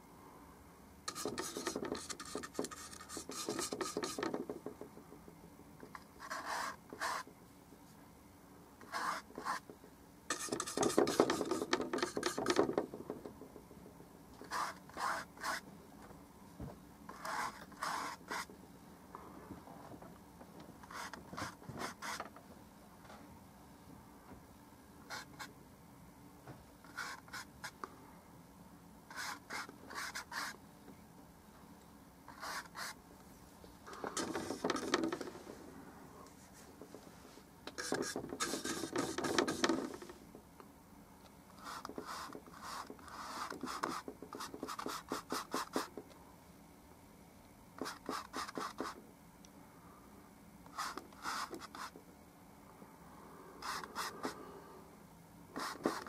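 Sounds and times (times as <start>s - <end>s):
paintbrush scrubbing: 1.1s - 4.3s, 10.3s - 12.6s, 37.8s - 39.7s.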